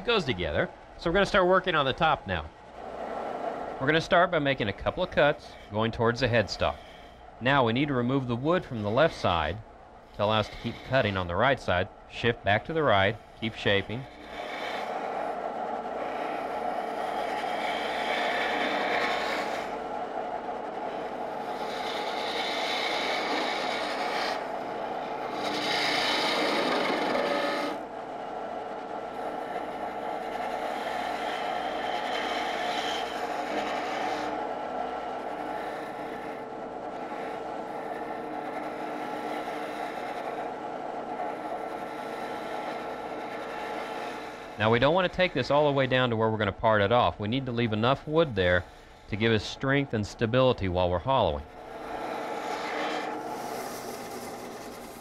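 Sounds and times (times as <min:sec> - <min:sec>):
lathe humming: 0:00.0 - 0:55.0.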